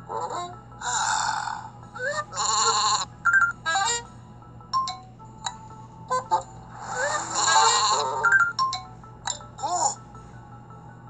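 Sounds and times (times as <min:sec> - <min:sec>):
light background music: 0:00.0 - 0:11.0
cartoon sheep bleating: 0:02.0 - 0:03.1, 0:07.0 - 0:08.3.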